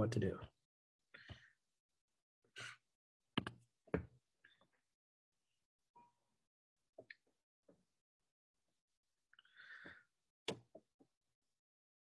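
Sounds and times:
short breath: 0:09.4 - 0:10.1.

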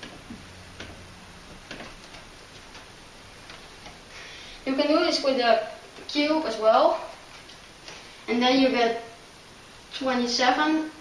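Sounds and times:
marker pen on whiteboard: 0:00.0 - 0:04.1
low room hum: 0:00.0 - 0:11.0.

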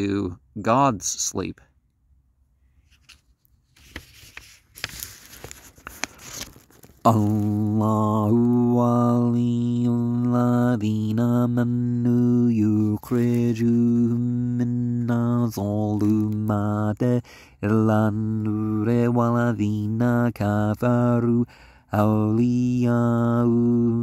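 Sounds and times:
man chanting recitation: 0:07.1 - 0:24.0.

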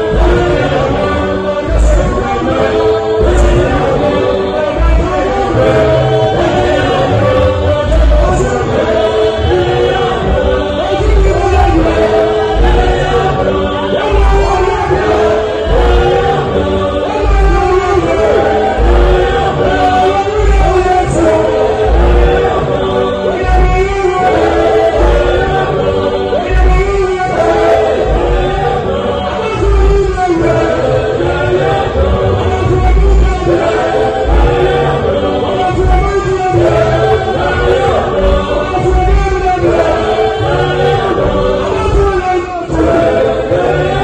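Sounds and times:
deep bass notes: 0:00.0 - 0:44.0
gospel choir singing: 0:00.0 - 0:44.0.

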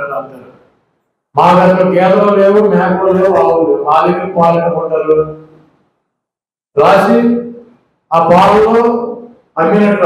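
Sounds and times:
man speaking into microphone: 0:00.0 - 0:00.6, 0:01.3 - 0:05.6, 0:06.7 - 0:10.0.

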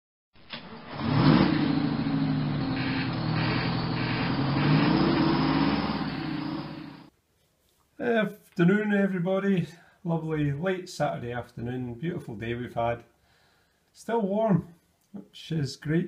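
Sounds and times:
lorry engine revving: 0:00.5 - 0:07.1.

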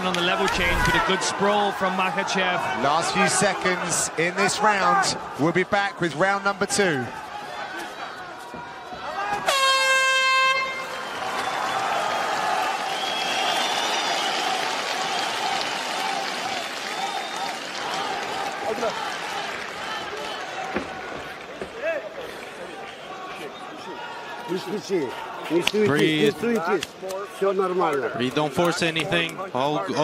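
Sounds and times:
arena crowd noise with shouting: 0:00.0 - 0:30.0.

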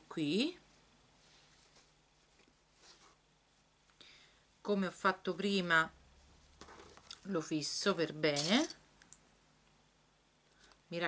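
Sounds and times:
fabric rustling: 0:00.7 - 0:03.8.

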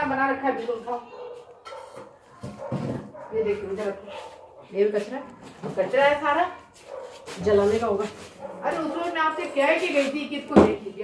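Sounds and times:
woman speaking loudly: 0:07.4 - 0:11.0.

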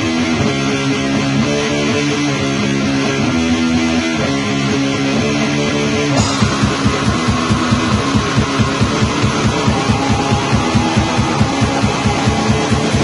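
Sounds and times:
distorted electric guitar: 0:00.0 - 0:13.0
fast drum beat: 0:06.2 - 0:13.0.

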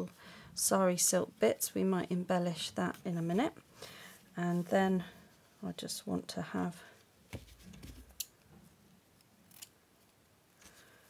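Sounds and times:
soft rustling: 0:02.8 - 0:05.6, 0:06.8 - 0:08.2.

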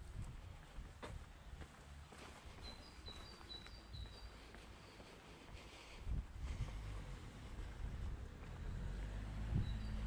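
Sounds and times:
songbird singing: 0:02.4 - 0:05.4, 0:08.2 - 0:10.0.

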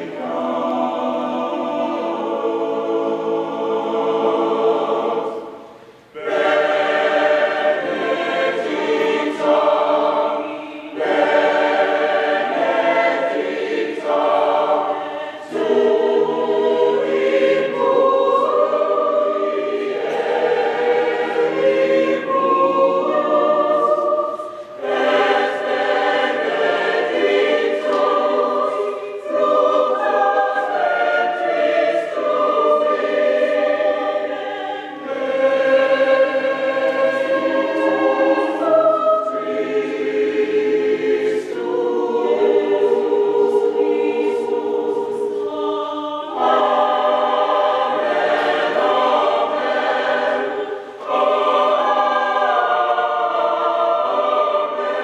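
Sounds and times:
choir singing unaccompanied: 0:00.0 - 0:55.0.

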